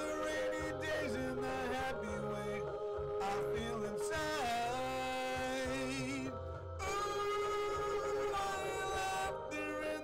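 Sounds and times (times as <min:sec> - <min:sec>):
instrumental backing track: 0:00.0 - 0:10.0
man singing a pop ballad: 0:00.0 - 0:10.0.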